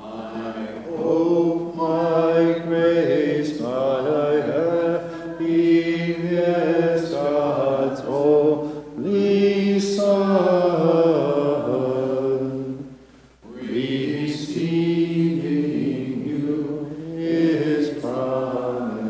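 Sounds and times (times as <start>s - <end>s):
unaccompanied liturgical chant: 0.0s - 19.0s.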